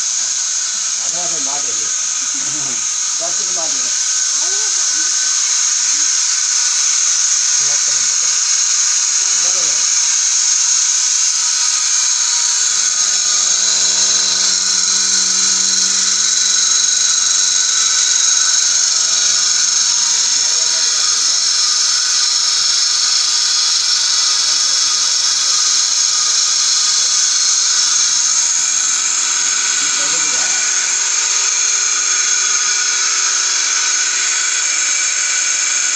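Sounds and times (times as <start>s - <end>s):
vacuum pump hissing and whining: 0.0s - 35.9s.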